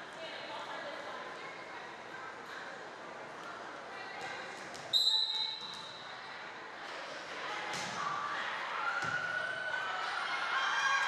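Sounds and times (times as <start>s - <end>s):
echoing voices in gymnasium: 0.0s - 11.0s.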